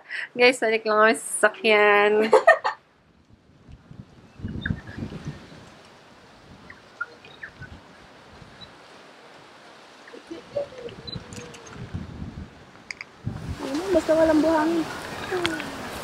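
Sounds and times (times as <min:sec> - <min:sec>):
steady low hiss: 0:00.0 - 0:16.0
bird chirps: 0:04.3 - 0:05.0, 0:06.6 - 0:07.8.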